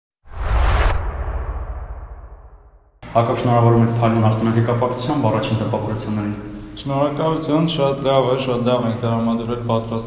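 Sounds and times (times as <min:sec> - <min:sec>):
deep whoosh sound effect: 0:00.2 - 0:03.0.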